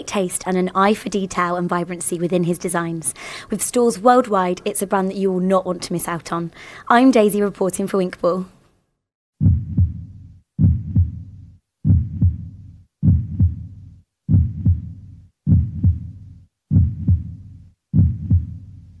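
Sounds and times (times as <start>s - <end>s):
heartbeat double thump: 9.4s - 18.7s.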